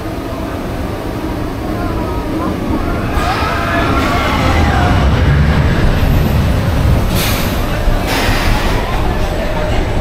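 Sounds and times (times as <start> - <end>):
roller coaster wheels rumbling: 0.0 - 10.0.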